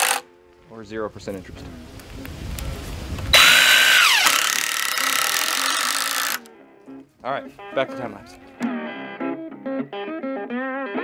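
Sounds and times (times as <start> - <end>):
cordless drill driving screw: 0.0 - 0.2, 3.3 - 6.5.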